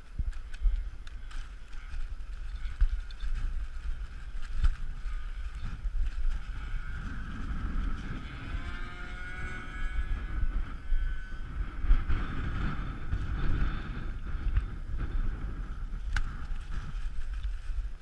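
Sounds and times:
strong wind on microphone: 0:00.0 - 0:18.0
small motor whine: 0:04.4 - 0:14.7.

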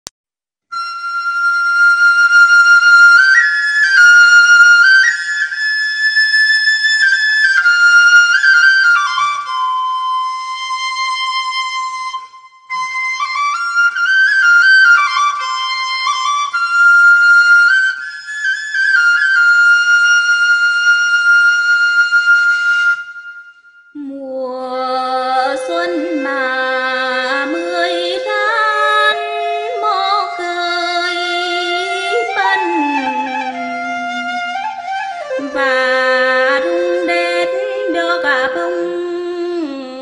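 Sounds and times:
solo flute melody: 0:00.7 - 0:40.0.

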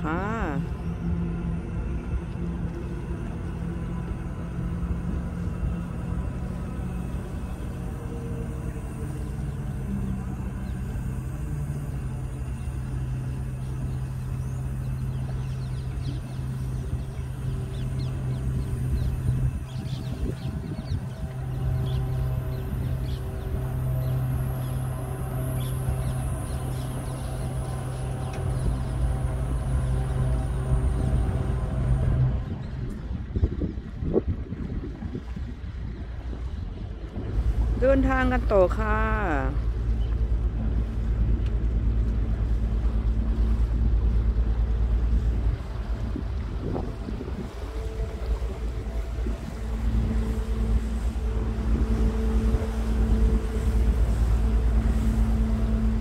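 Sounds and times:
low mechanical drone: 0:00.0 - 0:56.0.

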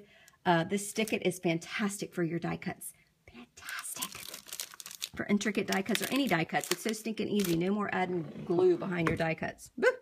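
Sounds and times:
paper rustling and crinkling: 0:04.0 - 0:07.6.

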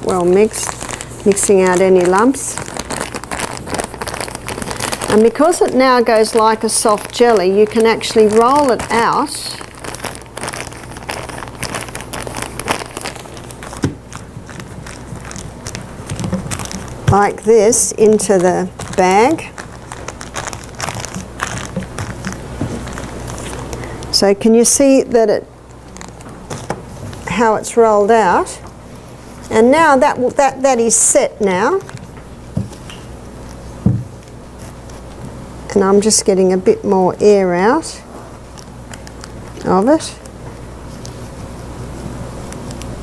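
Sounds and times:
plastic bag crinkling: 0:00.0 - 0:35.4, 0:36.0 - 0:43.0.

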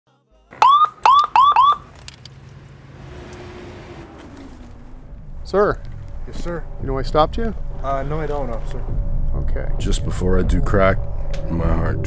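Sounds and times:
police siren chirps: 0:00.6 - 0:01.9.

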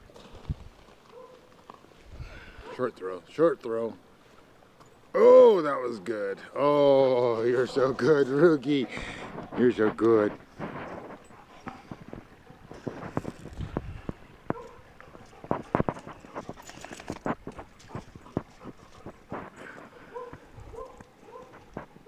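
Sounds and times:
steps crunching on gravel: 0:09.0 - 0:22.0.

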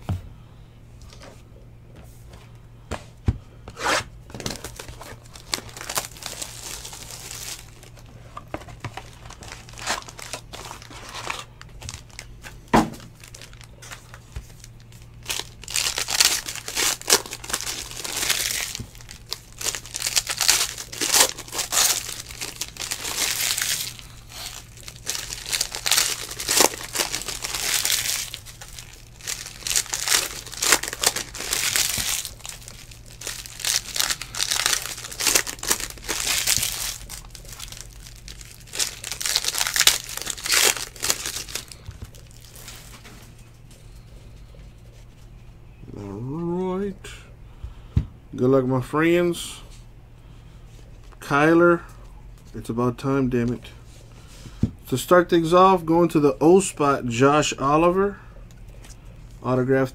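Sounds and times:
plastic wrapping crinkling: 0:04.3 - 0:44.0.

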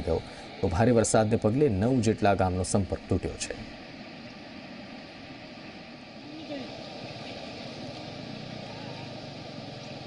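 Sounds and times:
river rushing: 0:00.0 - 0:10.0.

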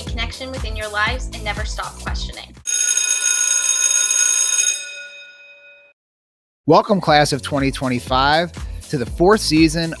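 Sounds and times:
bell ringing: 0:02.7 - 0:06.0.

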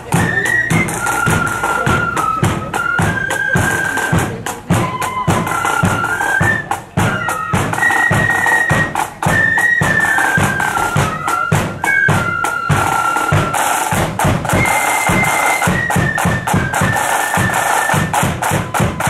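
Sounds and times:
flutes playing melody: 0:00.0 - 0:19.0
side drum rolls: 0:00.0 - 0:19.0.

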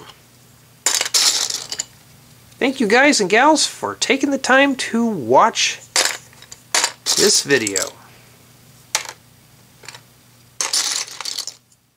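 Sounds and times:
plastic bricks clattering: 0:00.9 - 0:01.9, 0:10.6 - 0:11.7.

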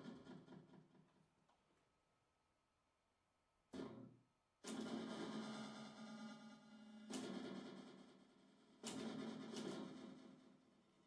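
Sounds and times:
amplified typewriter hits: 0:08.8 - 0:10.1.

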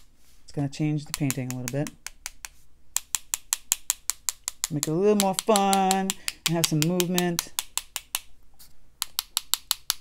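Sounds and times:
brush tapping on pen barrel: 0:01.0 - 0:08.3, 0:09.0 - 0:10.0.

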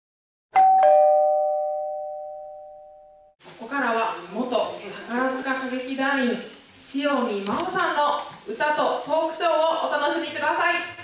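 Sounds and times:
two-note doorbell chime: 0:00.5 - 0:03.3.

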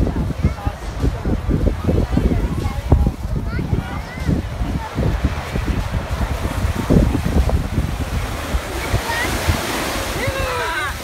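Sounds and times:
small waves breaking on beach: 0:00.0 - 0:11.0
wind rumbling on microphone: 0:00.0 - 0:11.0.

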